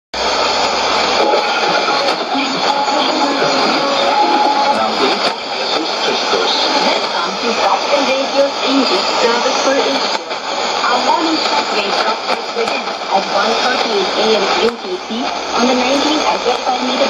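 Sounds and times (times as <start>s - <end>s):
radio broadcast music: 0.2s - 17.0s
radio hiss and static: 0.2s - 17.0s
radio voice: 1.1s - 17.0s.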